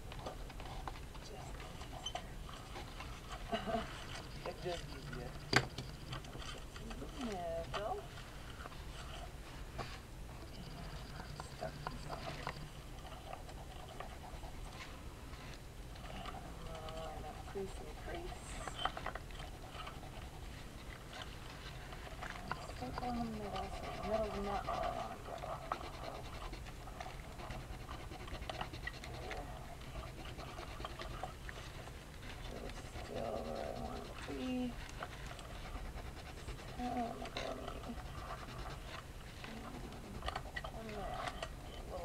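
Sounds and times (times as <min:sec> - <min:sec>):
pencil scratching on paper: 0:22.4 - 0:31.4, 0:32.4 - 0:39.0.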